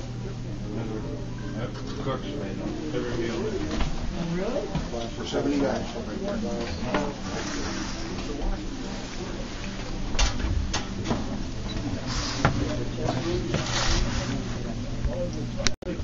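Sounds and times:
people talking indistinctly: 0.0 - 16.0
steady low hum: 0.0 - 16.0.

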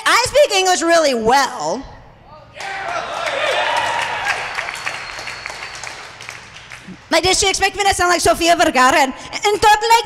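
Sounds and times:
audience clapping: 2.6 - 7.1.

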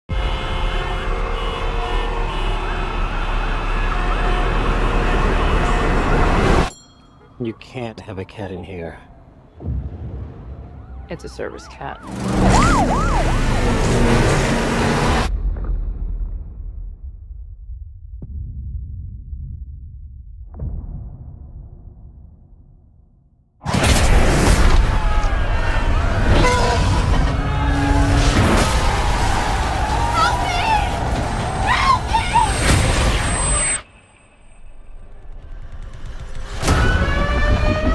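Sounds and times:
city traffic rumble: 0.1 - 15.3, 25.0 - 37.9
sirens wailing: 0.2 - 15.3, 24.7 - 33.9, 35.6 - 37.9.

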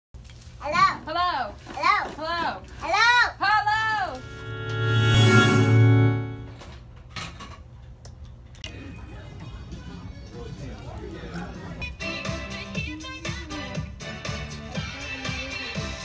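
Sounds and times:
low hum: 4.1 - 6.8
music through karaoke speaker: 8.7 - 16.0.

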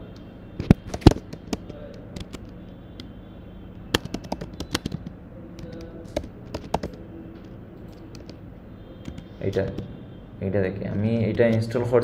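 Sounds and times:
typing on computer keyboard: 0.6 - 3.1, 3.9 - 8.4, 9.0 - 9.9.

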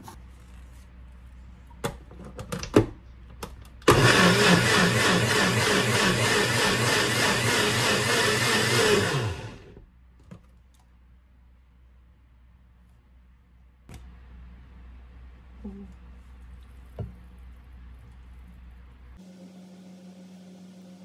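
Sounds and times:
blender motor running: 3.9 - 9.8.

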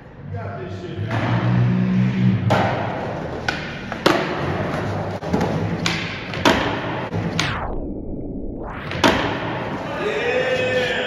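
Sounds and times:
skateboard wheels rolling on concrete: 2.5 - 6.8
skateboard clacks and thuds: 2.5 - 7.0.

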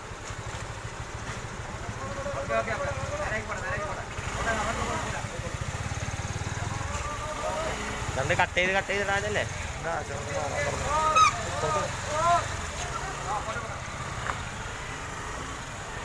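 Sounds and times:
vehicle engine idling: 0.0 - 16.0
people calling out: 6.2 - 8.2, 10.4 - 13.4.

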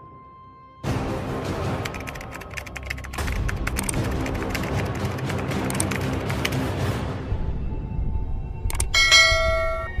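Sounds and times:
bell ringing: 8.9 - 10.0.

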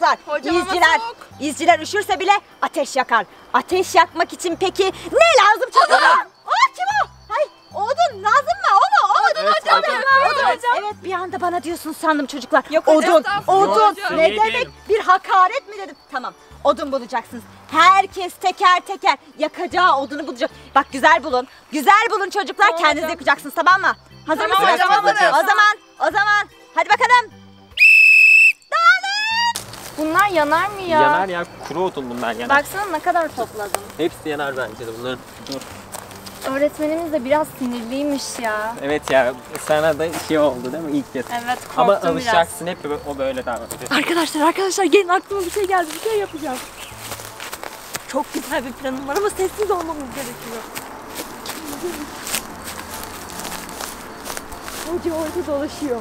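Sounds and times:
plastic whistle blast: 27.8 - 29.6
footsteps on dry forest ground: 29.5 - 42.4, 43.6 - 56.0
brush rustling: 29.6 - 56.0.

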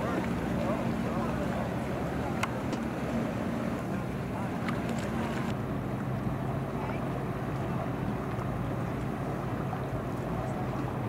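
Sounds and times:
outboard motors humming: 0.0 - 11.0
wind and water noise: 0.0 - 11.0.

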